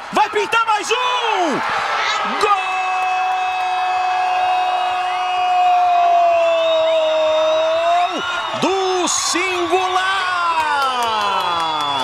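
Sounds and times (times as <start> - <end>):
commentator shouting goal: 0.1 - 4.3.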